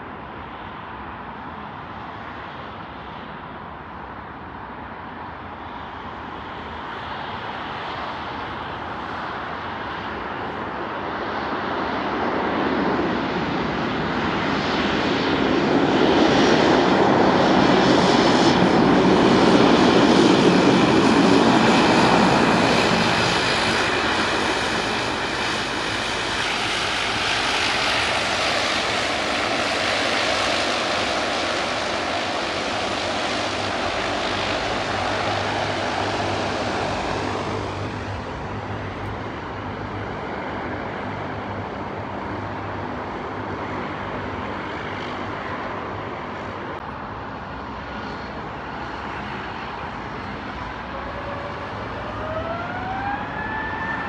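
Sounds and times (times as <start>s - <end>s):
turboprop engines and propellers: 0.0s - 54.0s
steady high whine: 17.4s - 44.3s.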